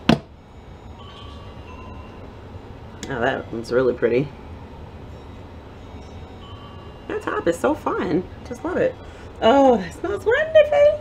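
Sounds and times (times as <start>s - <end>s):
faint high tones: 0.4s - 11.0s.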